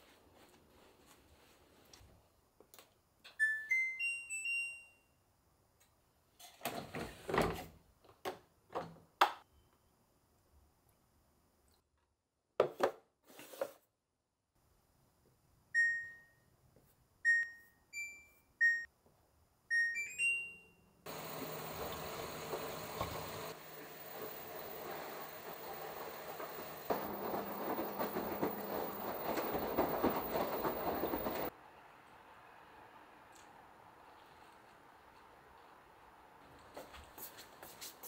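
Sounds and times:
washing machine beeps: 3.4 - 5.1, 15.8 - 16.5, 17.2 - 18.9, 19.7 - 31.5.

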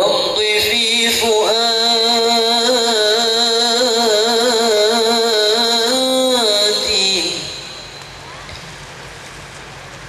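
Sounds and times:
person singing over sound system: 0.0 - 8.2
low background noise: 0.0 - 10.0.

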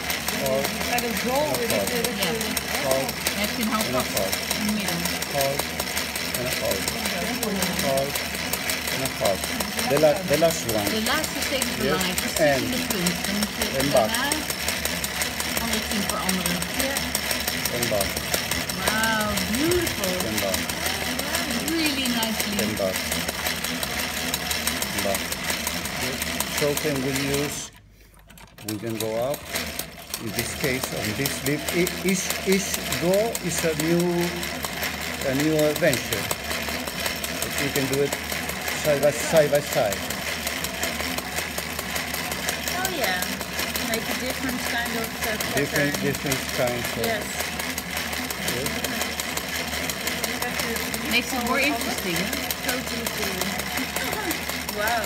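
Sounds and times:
sewing machine clattering: 0.0 - 55.0.

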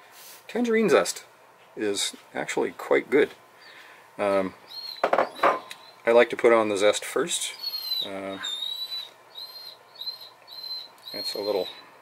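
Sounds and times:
high whistling chirps: 4.7 - 6.1, 7.5 - 11.9.

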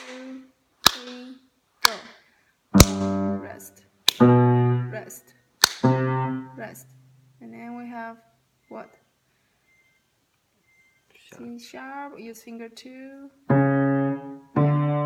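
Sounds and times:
slow low piano notes: 2.8 - 3.6, 13.5 - 15.0.

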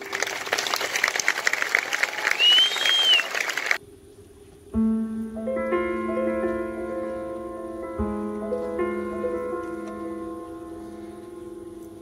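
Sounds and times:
audience applauding: 0.0 - 3.8
whistle rising and falling: 2.2 - 3.5
grand piano soft notes: 3.9 - 12.0.

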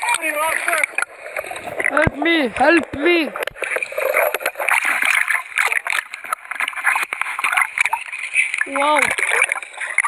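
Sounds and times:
seawater splashing and churning: 0.0 - 10.0.

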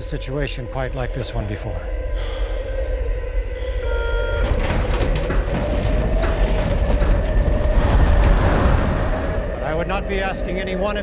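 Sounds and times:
held tone: 3.6 - 4.8.

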